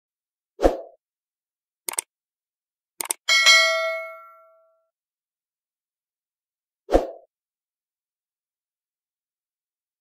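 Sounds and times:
mouse clicks: 0:01.9 - 0:02.1, 0:03.0 - 0:03.2
notification bell ding: 0:03.3 - 0:04.7.

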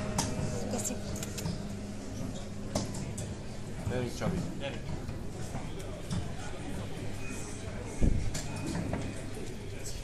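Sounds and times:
steady low hum: 0:00.0 - 0:08.4.

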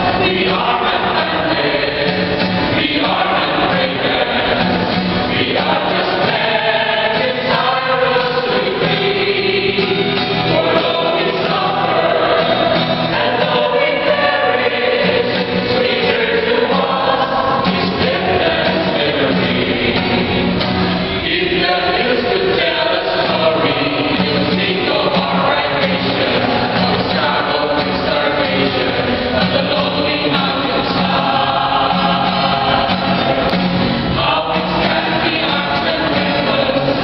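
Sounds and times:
mixed choir singing in harmony: 0:00.0 - 0:37.0
strummed acoustic guitar: 0:00.0 - 0:37.0.

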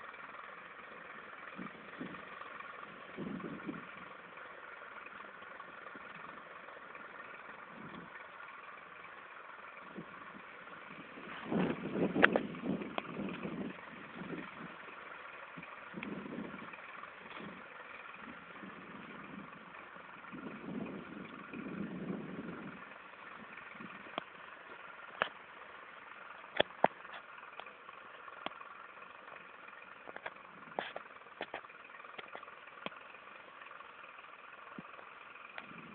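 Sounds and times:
tractor engine running: 0:00.0 - 0:35.9.

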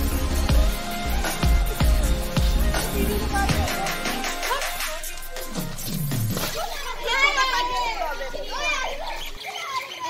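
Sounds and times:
children shouting and squealing: 0:02.8 - 0:10.0.

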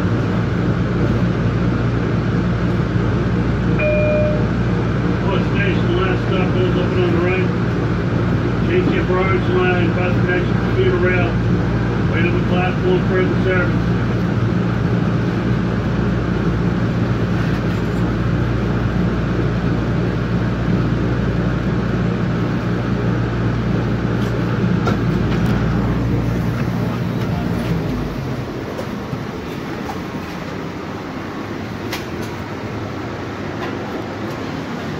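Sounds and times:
train low hum: 0:00.0 - 0:34.9.

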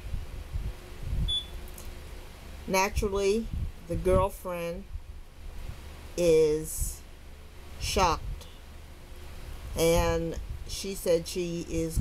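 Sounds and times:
faint background hiss: 0:00.0 - 0:12.0
short high-pitched beep: 0:01.3 - 0:01.6.

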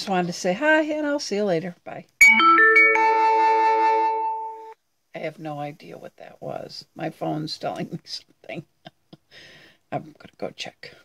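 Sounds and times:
phone alert chime: 0:02.2 - 0:04.6.

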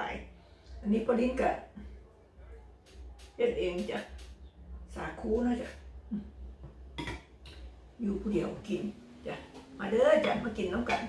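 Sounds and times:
metal ladle knocking on pot: 0:07.0 - 0:07.3, 0:10.2 - 0:11.0.

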